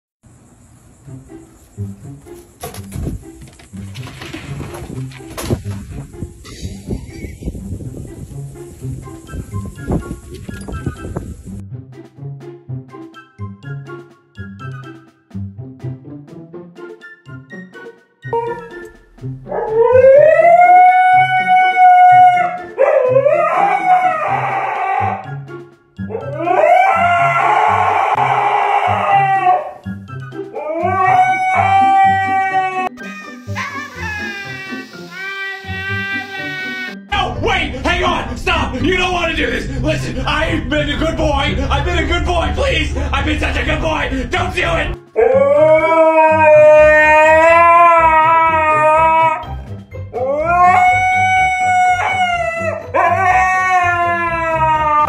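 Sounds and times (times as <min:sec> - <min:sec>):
background music with steady beat: 0:01.0 - 0:55.0
husky howling: 0:19.5 - 0:25.3, 0:26.1 - 0:29.8, 0:30.5 - 0:33.0, 0:41.6 - 0:49.4, 0:50.2 - 0:55.0.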